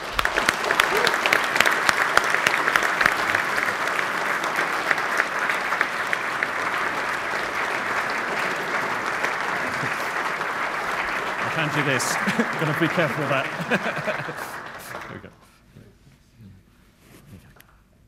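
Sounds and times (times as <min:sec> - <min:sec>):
audience applauding: 0:00.0 - 0:15.4.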